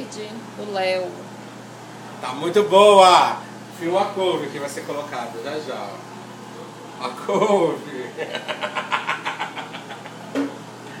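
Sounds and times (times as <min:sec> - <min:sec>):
man laughing: 0:07.2 - 0:10.3.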